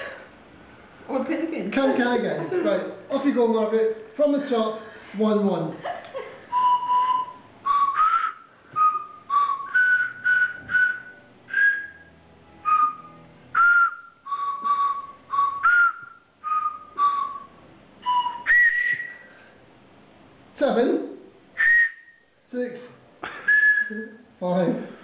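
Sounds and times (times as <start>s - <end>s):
pitch whistles playing a tune: 6.5s - 19.4s, 21.6s - 22.3s, 23.4s - 24.3s.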